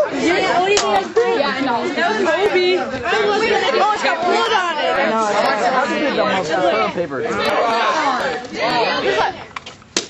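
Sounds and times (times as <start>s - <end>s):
young people talking and exclaiming: 0.0s - 9.8s.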